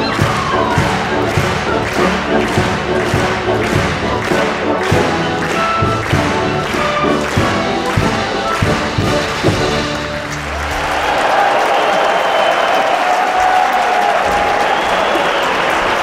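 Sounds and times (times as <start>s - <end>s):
strong rhythmic thump: 0.0s - 10.6s
symphony orchestra playing: 0.0s - 11.4s.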